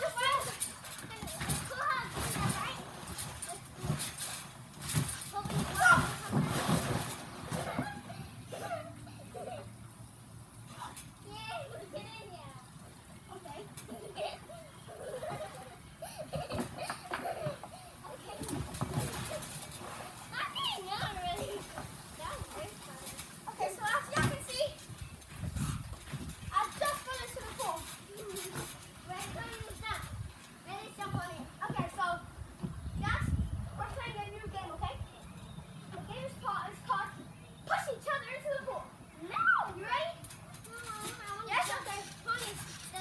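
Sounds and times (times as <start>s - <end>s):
thumps of bouncing on trampoline: 0.0s - 9.8s, 13.3s - 34.9s, 35.9s - 43.0s
children calling and squealing: 13.3s - 25.1s, 26.5s - 32.3s, 35.8s - 43.0s.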